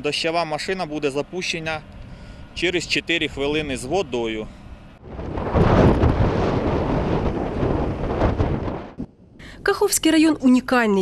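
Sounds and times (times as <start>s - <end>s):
wind rumbling on microphone: 1.8s - 9.9s.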